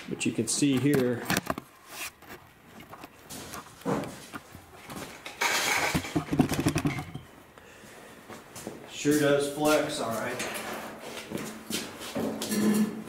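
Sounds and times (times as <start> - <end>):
shuffling and scraping: 0.1 - 6.8, 7.8 - 13.0
footsteps on concrete floor: 2.9 - 5.2, 7.8 - 13.0.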